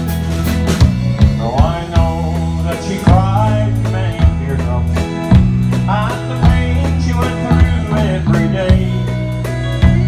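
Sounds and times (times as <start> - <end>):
bass notes: 0.0 - 10.0
drum kit steady beat: 0.0 - 10.0.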